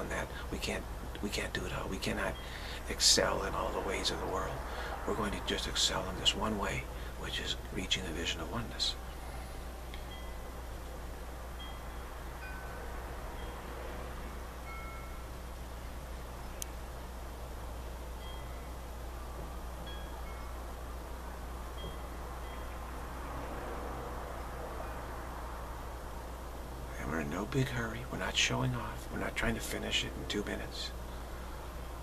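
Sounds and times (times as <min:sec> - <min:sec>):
background hiss: 0:00.0 - 0:32.0
low hum: 0:00.0 - 0:32.0
short high ringing tones: 0:09.0 - 0:10.8, 0:11.5 - 0:16.2, 0:18.1 - 0:23.1.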